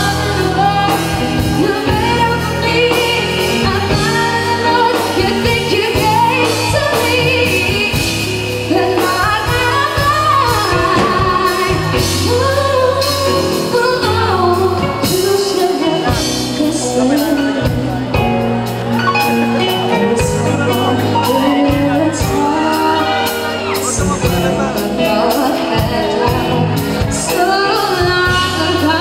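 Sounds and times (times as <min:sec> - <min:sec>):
live band with keyboard and drums: 0:00.0 - 0:29.0
woman singing into a microphone: 0:00.0 - 0:29.0.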